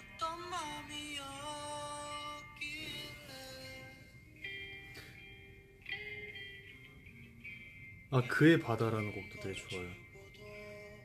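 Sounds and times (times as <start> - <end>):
person singing long sliding notes: 0.0 - 4.2, 9.3 - 11.0
light instrumental backing: 0.0 - 11.0.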